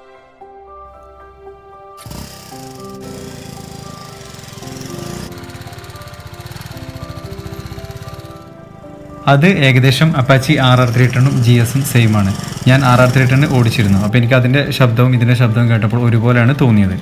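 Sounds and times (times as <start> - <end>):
background music: 0.0 - 17.0
motorcycle engine starting and running: 2.0 - 14.3.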